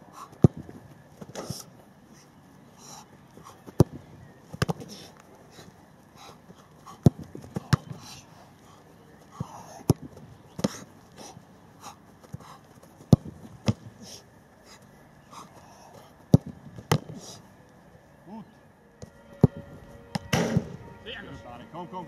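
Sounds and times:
heavy breathing: 0.0 - 0.6, 1.4 - 3.8, 4.8 - 9.9, 10.6 - 13.1, 13.9 - 16.3, 17.0 - 17.6
football being kicked: 7.0 - 8.0, 9.4 - 10.8, 13.1 - 13.9, 16.3 - 17.2, 20.2 - 20.8
ball caught or hitting ground: 13.1 - 13.9, 16.3 - 17.2, 20.2 - 20.8.

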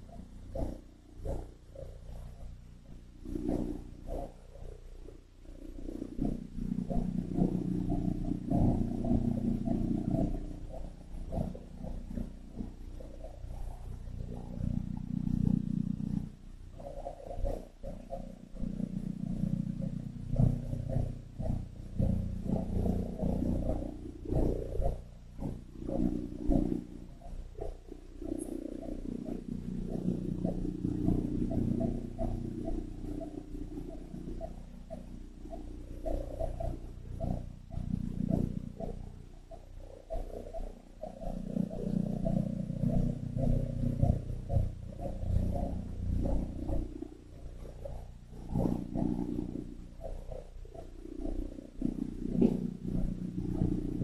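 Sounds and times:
low rough growling rumble: 0.0 - 54.0.

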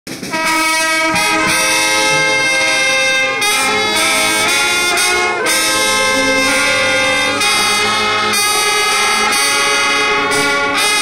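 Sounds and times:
brass instruments playing chords: 0.1 - 11.0.

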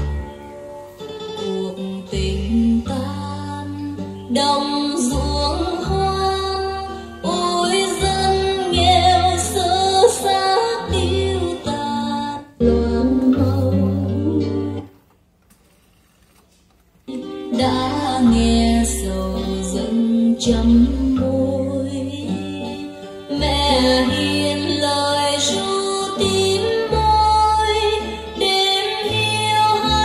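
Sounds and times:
female vocal music with guitar: 0.0 - 15.0, 17.1 - 30.0.

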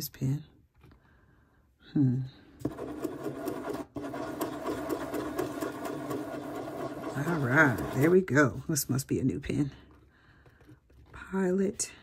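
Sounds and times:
gel pen scribbling on paper: 2.6 - 8.2.

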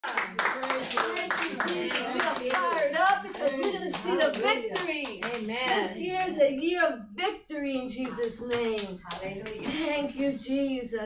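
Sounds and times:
hands clapping rhythmically: 0.0 - 6.0, 8.0 - 9.9.

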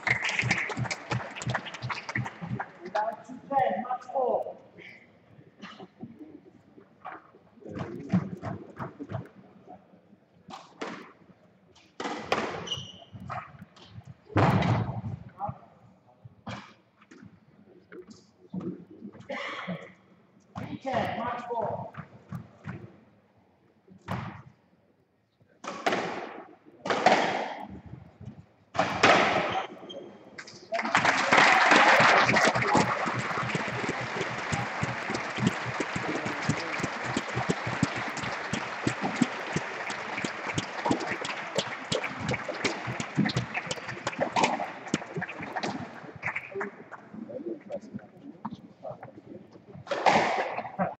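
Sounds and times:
crowd applauding: 0.0 - 2.9, 30.8 - 46.7.

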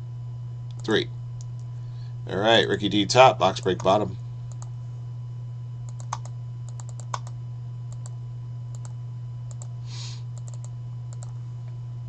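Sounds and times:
steady low hum: 0.0 - 12.0
mouse and keyboard clicks: 5.9 - 7.3.

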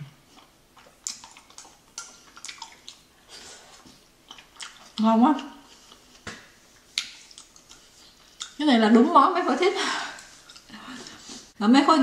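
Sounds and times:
wet chewing: 0.2 - 8.6, 10.2 - 11.5.

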